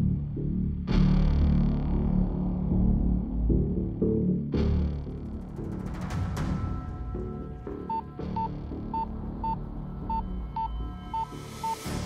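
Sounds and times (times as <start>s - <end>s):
high alarm beeps: 7.9s - 11.9s.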